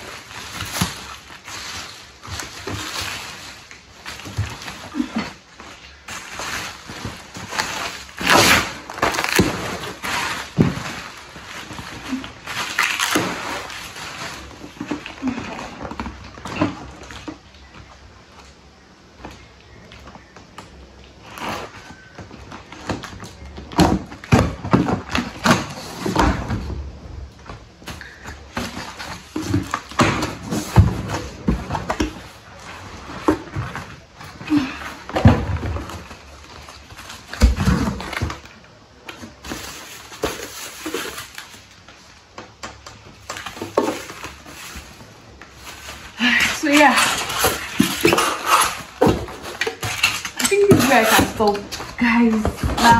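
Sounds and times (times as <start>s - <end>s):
packaging rustling and tearing: 0.0s - 18.0s, 27.7s - 52.9s
knocks and clatters of objects: 0.0s - 20.8s, 21.4s - 52.9s.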